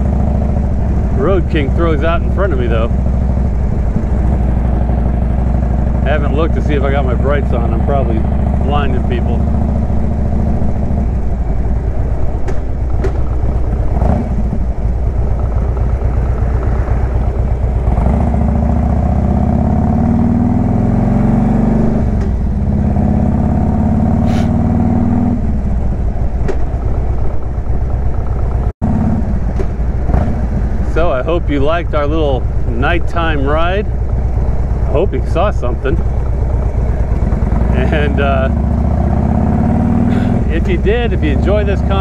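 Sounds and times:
motorcycle engine accelerating: 0:00.0 - 0:42.0.

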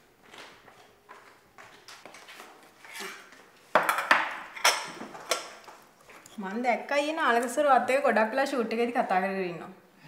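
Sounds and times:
tableware clinking: 0:02.9 - 0:05.6.

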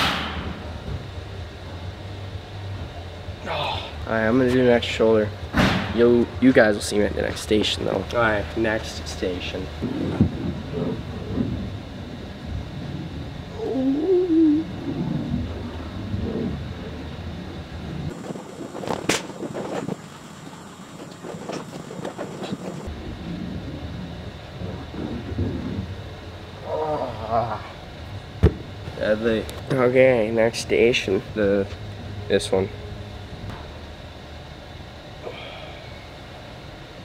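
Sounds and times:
sharp knock: 0:00.0 - 0:00.5
low room hum: 0:00.0 - 0:37.0
man straining vocal sounds: 0:03.4 - 0:04.0, 0:13.5 - 0:14.8.

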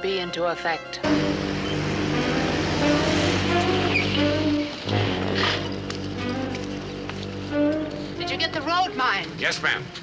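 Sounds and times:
car engine running: 0:01.1 - 0:07.6.

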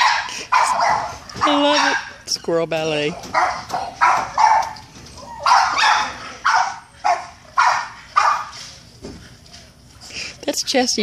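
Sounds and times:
dog barking: 0:00.0 - 0:02.2, 0:03.2 - 0:04.8, 0:05.4 - 0:08.6.

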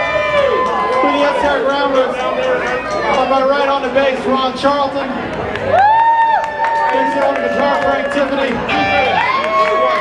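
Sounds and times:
crowd chatter: 0:00.0 - 0:10.0
man talking over pa system: 0:06.9 - 0:09.2.

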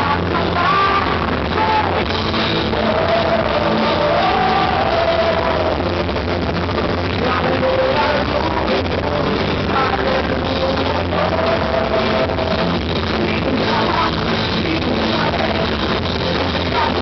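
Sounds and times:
rock band with guitar: 0:00.0 - 0:17.0.

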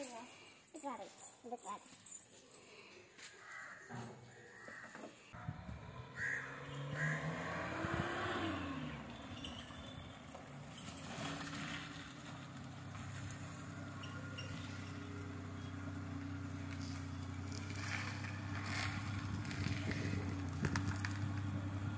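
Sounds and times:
vehicle passing by: 0:05.4 - 0:21.9.

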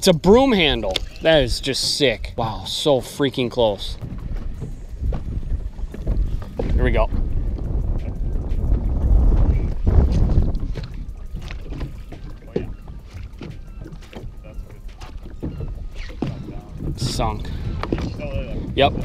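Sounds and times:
waves slapping boat hull: 0:00.0 - 0:19.0
wind rumbling on microphone: 0:00.0 - 0:19.0.

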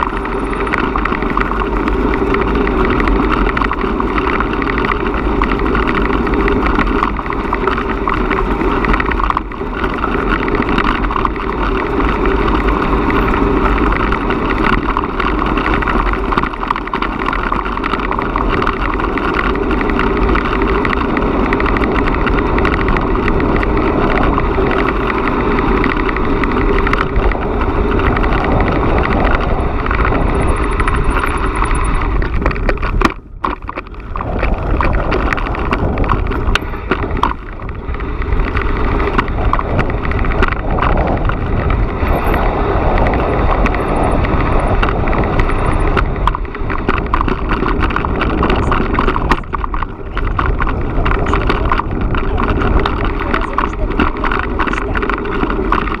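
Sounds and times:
bicycle rolling rumble: 0:00.0 - 0:56.0
wind noise on microphone: 0:00.0 - 0:56.0.

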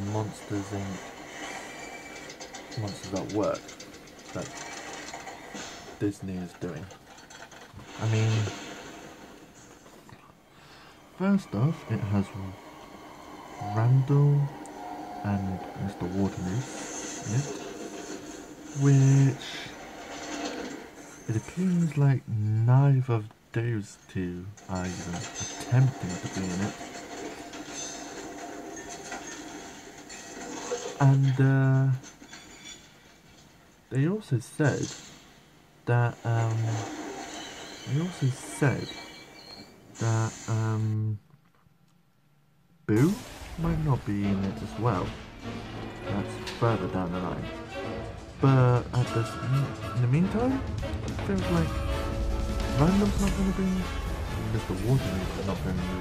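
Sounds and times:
fast mechanical clatter: 0:00.1 - 0:09.3
rain hissing: 0:07.8 - 0:21.6, 0:42.9 - 0:48.6, 0:50.7 - 0:56.0.

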